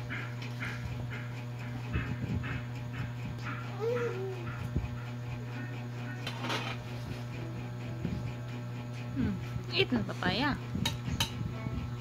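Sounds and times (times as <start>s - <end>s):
steady low hum: 0.0s - 12.0s
toddler humming: 3.5s - 4.8s.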